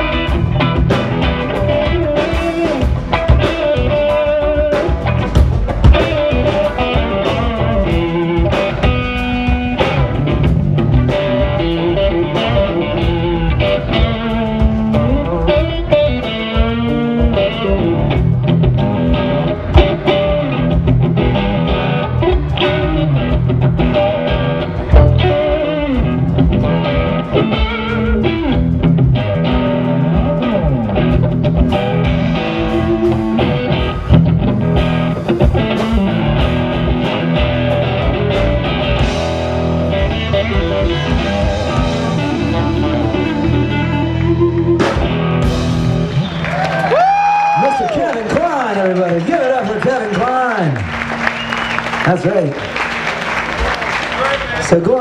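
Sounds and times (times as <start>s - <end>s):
electric guitar lead with bent notes: 0.0s - 48.0s
blues-rock band playing: 0.0s - 55.0s.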